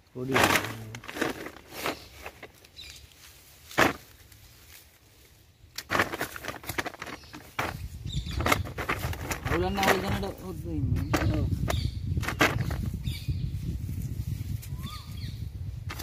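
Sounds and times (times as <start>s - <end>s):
plastic bag rustling and crinkling: 0.2s - 13.0s.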